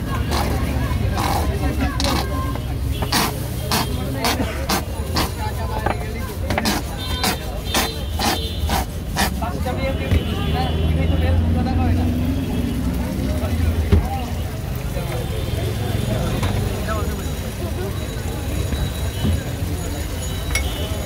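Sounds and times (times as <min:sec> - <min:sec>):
people talking: 0:00.0 - 0:21.0
road traffic rumble: 0:00.0 - 0:21.0.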